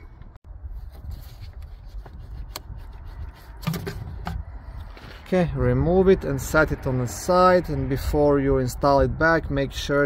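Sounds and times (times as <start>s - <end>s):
rubbing and scraping handling noise: 0.0s - 5.5s.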